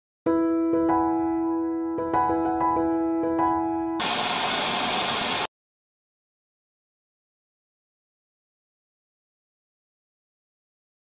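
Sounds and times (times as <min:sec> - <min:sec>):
television static hiss: 0:04.0 - 0:05.5.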